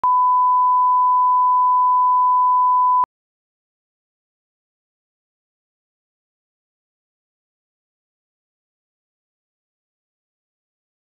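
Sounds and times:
steady pure test tone beep: 0.0s - 3.1s.

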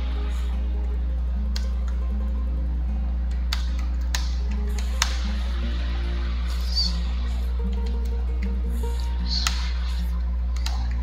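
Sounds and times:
background music with low drone: 0.0s - 11.0s
keyboard keystroke clicks: 3.3s - 5.2s.

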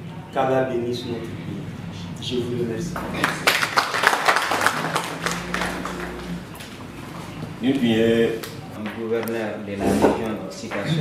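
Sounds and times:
audience applauding: 3.0s - 6.8s.

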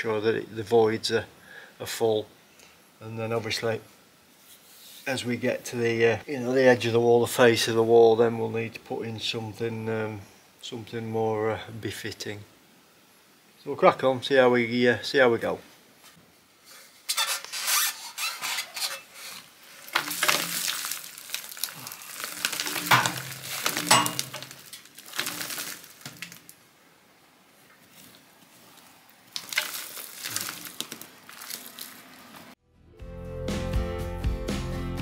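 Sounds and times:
stones scraping and clinking: 18.9s - 26.4s.

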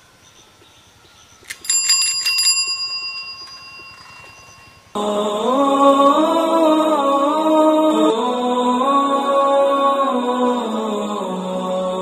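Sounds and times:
bicycle bell ringing rapidly: 1.6s - 5.0s.

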